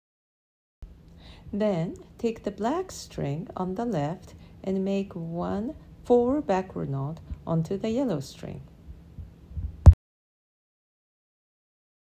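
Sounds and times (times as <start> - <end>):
low thumps: 9.2 - 10.0.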